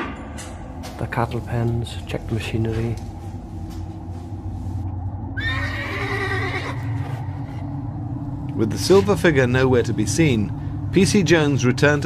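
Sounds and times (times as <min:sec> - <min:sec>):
low steady hum: 0:00.0 - 0:12.0
horse whinnying: 0:05.4 - 0:07.6.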